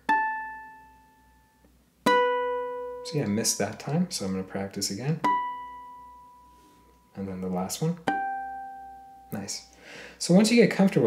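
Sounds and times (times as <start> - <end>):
ukulele harmonics plucked: 0.0 - 9.7.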